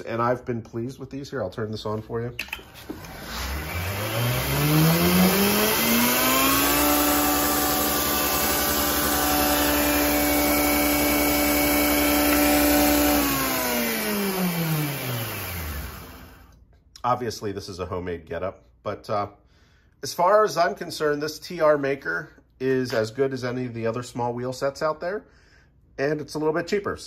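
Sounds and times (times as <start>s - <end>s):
belt grinder motor whine: 2.7s - 16.5s
grinder belt hissing: 2.9s - 16.4s.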